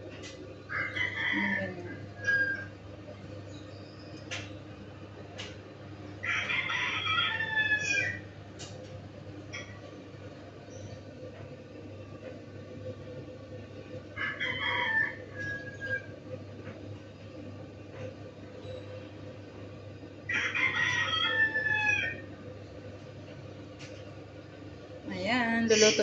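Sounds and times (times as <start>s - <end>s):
steady low hum: 0.0s - 26.0s
rooster crowing: 0.7s - 2.7s, 6.2s - 8.3s, 14.2s - 16.1s, 20.3s - 22.3s.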